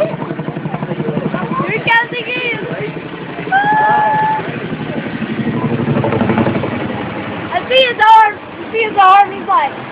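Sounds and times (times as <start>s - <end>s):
helicopter rotors chopping: 0.0s - 9.9s
voices: 0.0s - 9.9s
high shout: 3.5s - 4.5s.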